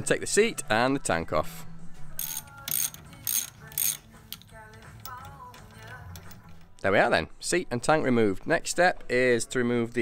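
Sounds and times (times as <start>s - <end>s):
faint radio music with singing: 0.0s - 10.0s
socket ratchet wrench clicking: 2.2s - 6.6s.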